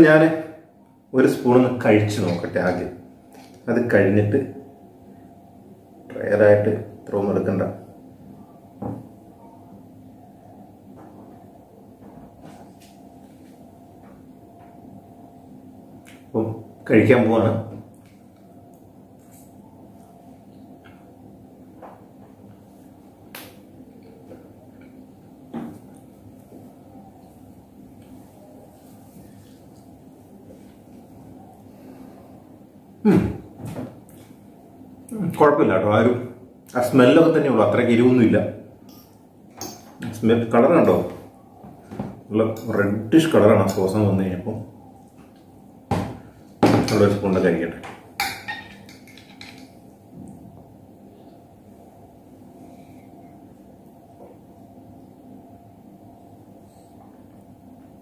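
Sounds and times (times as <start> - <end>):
low room hum: 0.0 - 58.0.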